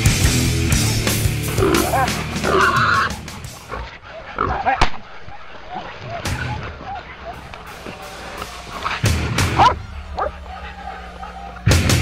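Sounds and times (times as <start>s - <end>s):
dogs barking and yelping: 0.2s - 12.0s.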